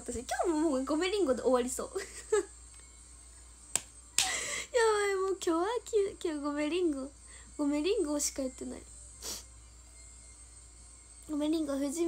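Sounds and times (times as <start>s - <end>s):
woman laughing: 2.0s - 2.5s
hand clap: 3.7s - 4.4s.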